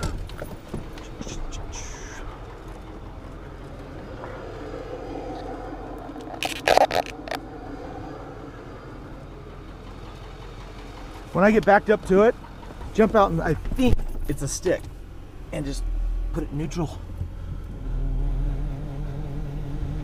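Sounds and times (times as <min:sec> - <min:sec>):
truck engine idling: 0:00.0 - 0:18.1.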